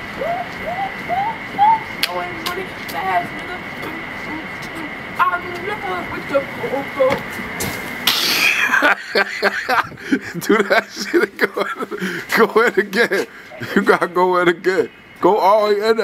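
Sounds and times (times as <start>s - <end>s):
short rising vocal calls: 0.0s - 2.0s
faint high-pitched whine: 0.0s - 16.0s
people laughing: 8.2s - 14.0s.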